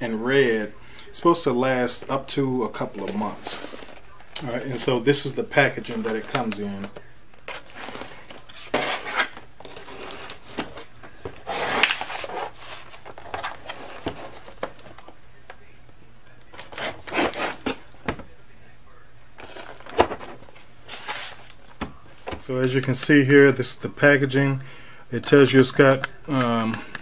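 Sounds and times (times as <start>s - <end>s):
cardboard scraping and rustling: 2.8s - 4.9s, 5.7s - 15.1s, 16.5s - 18.2s, 19.4s - 22.3s.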